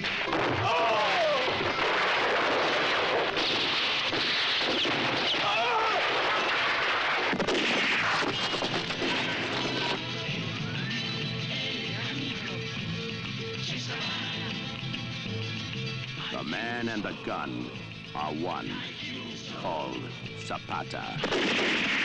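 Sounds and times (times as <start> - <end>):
explosions: 0.0 - 10.0, 21.2 - 22.0
gunfire: 0.0 - 10.0, 21.2 - 22.0.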